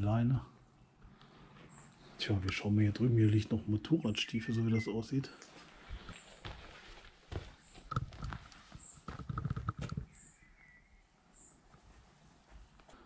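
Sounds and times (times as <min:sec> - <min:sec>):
footsteps crunching on rubble: 0:05.5 - 0:10.1.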